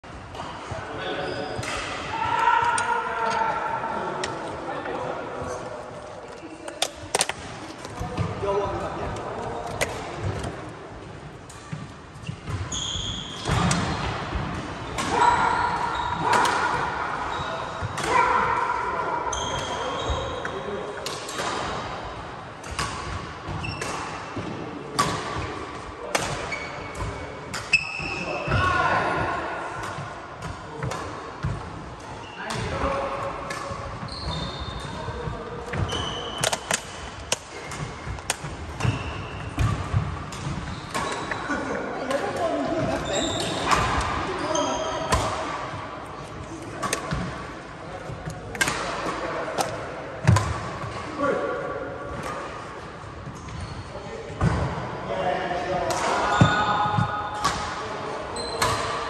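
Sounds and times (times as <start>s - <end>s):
shoes squeaking: 11.6s - 14.0s, 34.0s - 41.6s, 42.7s - 45.2s, 58.3s - 58.9s
shoes squeaking on wooden floor: 12.2s - 13.4s, 34.1s - 34.8s, 42.9s - 43.7s
racket striking shuttlecock: 35.6s - 39.0s, 46.8s - 47.4s, 48.2s - 50.6s.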